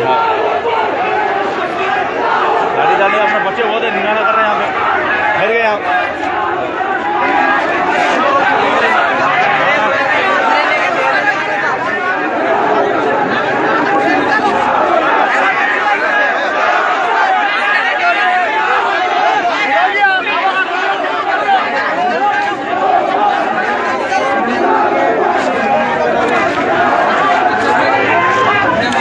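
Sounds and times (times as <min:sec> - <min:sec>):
crowd talking: 0:00.0 - 0:29.0.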